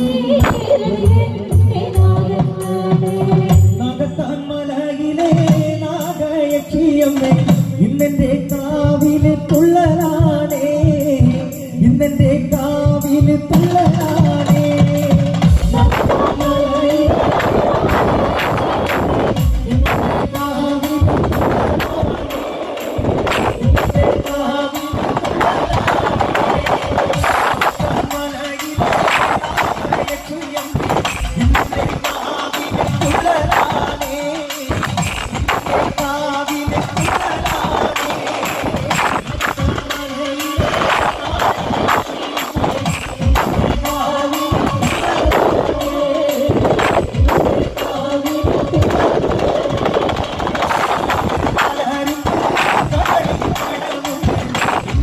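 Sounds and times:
fast dense percussion: 0.0s - 55.0s
loud band drumming: 0.0s - 55.0s.

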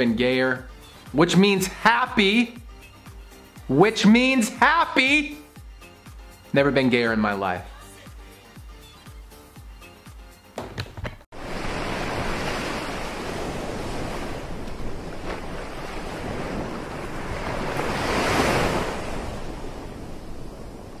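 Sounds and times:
sea waves washing: 11.3s - 21.0s.

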